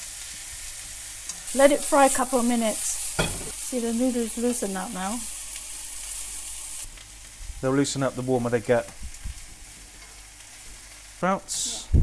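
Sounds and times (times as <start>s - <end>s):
food sizzling in a wok: 0.0s - 12.0s.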